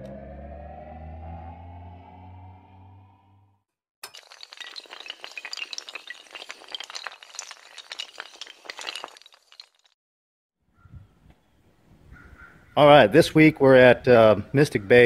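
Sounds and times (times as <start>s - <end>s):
tiles clinking and shattering: 4.0s - 10.0s.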